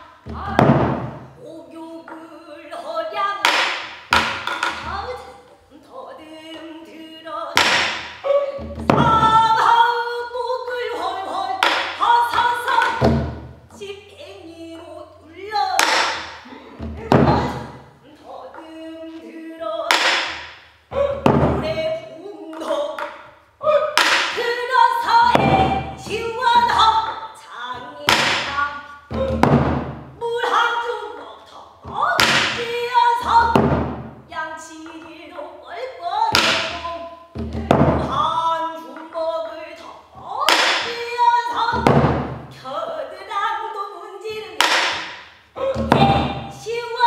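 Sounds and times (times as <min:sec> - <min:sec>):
woman singing: 0:00.0 - 0:03.7, 0:04.6 - 0:20.3, 0:20.9 - 0:44.8, 0:45.6 - 0:47.0
barrel drum strikes: 0:00.3 - 0:01.3, 0:21.2 - 0:21.8, 0:25.1 - 0:26.9, 0:28.1 - 0:30.1, 0:31.9 - 0:34.2, 0:41.8 - 0:42.5.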